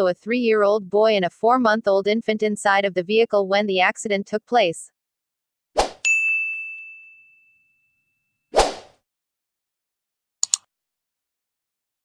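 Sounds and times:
bright high ding: 0:06.1 - 0:07.7.

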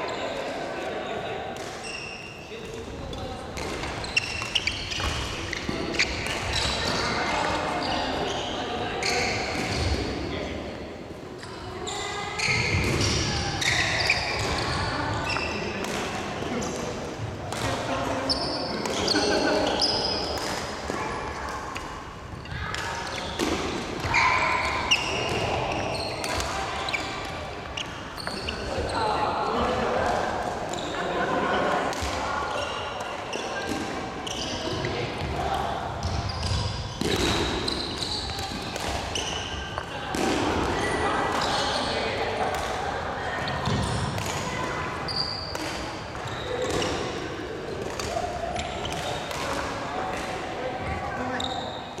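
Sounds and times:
sneakers squeaking on wooden floor: 0:01.8 - 0:10.1, 0:11.4 - 0:15.8, 0:18.2 - 0:21.3, 0:22.2 - 0:29.8, 0:30.7 - 0:31.1, 0:32.5 - 0:35.3, 0:36.0 - 0:40.0, 0:43.3 - 0:49.6, 0:50.8 - 0:52.0
racket hitting shuttlecock: 0:03.6 - 0:07.6, 0:15.8 - 0:17.9, 0:18.8 - 0:22.0, 0:22.7 - 0:26.7, 0:36.4 - 0:41.6, 0:43.4 - 0:50.6.

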